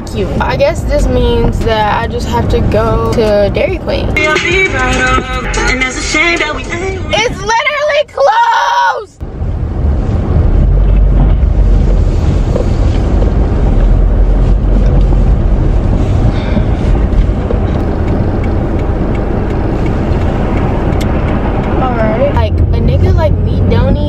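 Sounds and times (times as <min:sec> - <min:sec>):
car road and engine rumble: 0:00.0 - 0:24.0.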